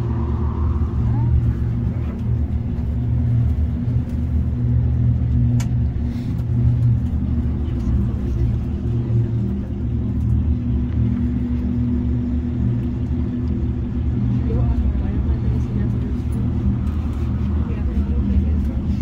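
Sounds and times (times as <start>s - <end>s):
cable car cabin rumble: 0.0s - 19.0s.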